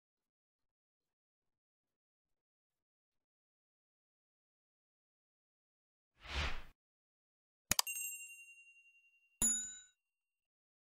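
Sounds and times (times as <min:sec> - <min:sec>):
bright notification bell ding: 0:07.7 - 0:10.0
ringing ding: 0:07.7 - 0:10.0.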